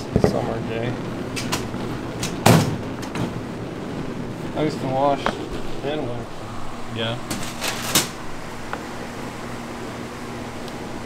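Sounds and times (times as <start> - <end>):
low machine hum: 0.0 - 11.0
loud thump: 2.4 - 3.3.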